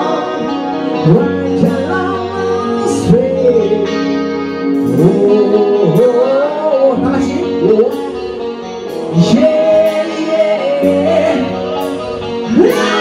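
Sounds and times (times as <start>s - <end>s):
heavy metal band playing: 0.0s - 13.0s
person singing long notes: 0.0s - 13.0s.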